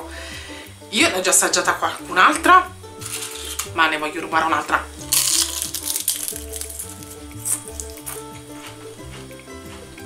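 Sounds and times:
background music: 0:00.0 - 0:10.0
chip crunching when chewed: 0:05.0 - 0:10.0.

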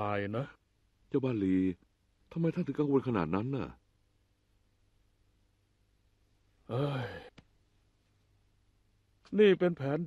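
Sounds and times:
man's exasperated sighing exclamation: 0:06.7 - 0:07.3.

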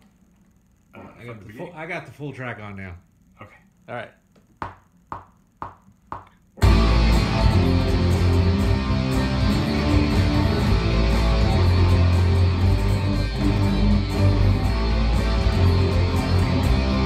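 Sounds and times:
electric guitar playing: 0:06.6 - 0:17.0
rock backing track: 0:06.6 - 0:17.0.

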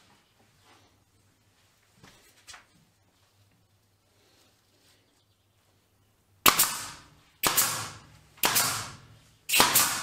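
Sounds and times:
pneumatic nail gun firing: 0:06.5 - 0:10.0.

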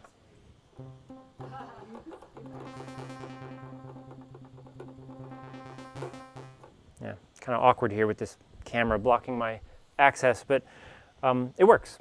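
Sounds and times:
sawtooth synth notes: 0:00.8 - 0:06.8.

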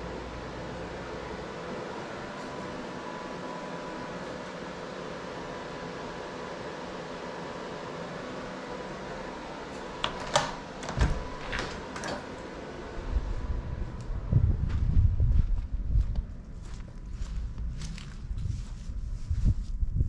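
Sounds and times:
cooling fans humming: 0:00.0 - 0:20.0
deadbolt and door handle clicks: 0:10.0 - 0:12.3
low rumble on microphone: 0:12.9 - 0:20.0.

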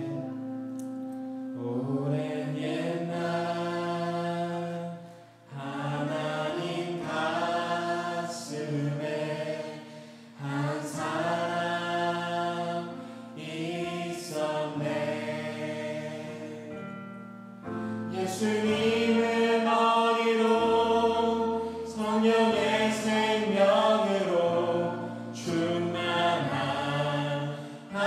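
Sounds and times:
choir singing praise song: 0:01.6 - 0:17.0, 0:17.8 - 0:28.0.

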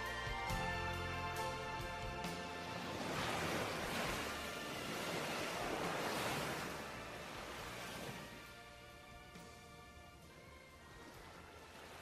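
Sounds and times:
ocean waves washing: 0:01.3 - 0:12.0.

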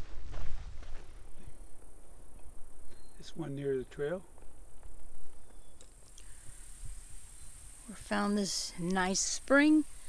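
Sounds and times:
insects buzzing: 0:01.7 - 0:10.0.

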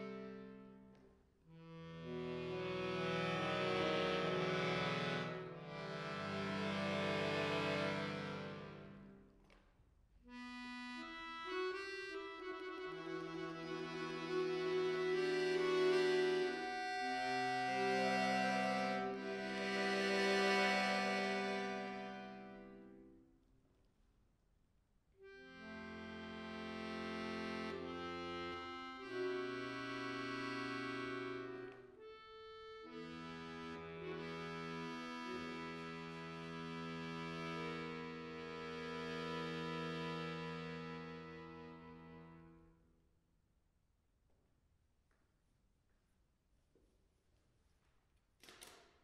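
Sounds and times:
accordion playing held chords: 0:00.0 - 0:09.2, 0:10.3 - 0:23.1, 0:25.2 - 0:42.8.

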